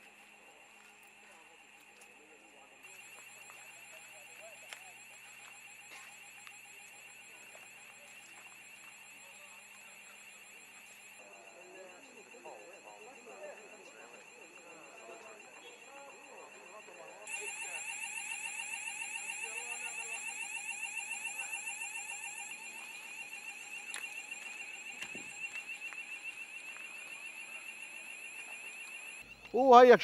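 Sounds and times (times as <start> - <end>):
faint voices: 0.0 - 28.6
electronic alarm warbling: 0.0 - 29.8.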